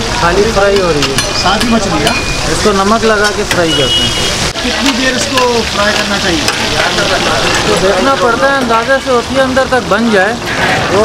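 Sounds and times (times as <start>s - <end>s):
voices talking: 0.0s - 11.0s
fish sizzling in oil: 1.4s - 11.0s.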